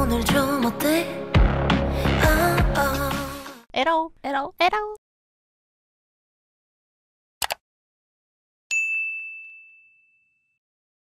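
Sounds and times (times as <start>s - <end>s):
bright bell ding: 8.7s - 10.6s.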